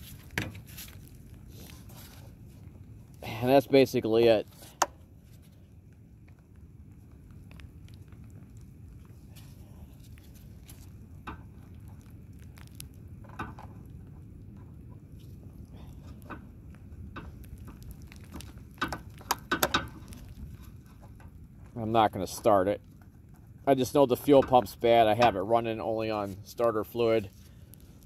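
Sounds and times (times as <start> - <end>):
wind rumble on microphone: 0.0 - 28.0
small clicks and taps: 16.1 - 21.4.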